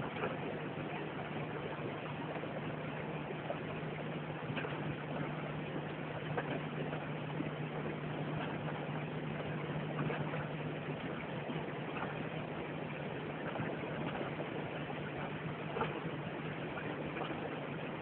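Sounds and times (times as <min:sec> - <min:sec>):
boat engine idling: 0:00.0 - 0:18.0.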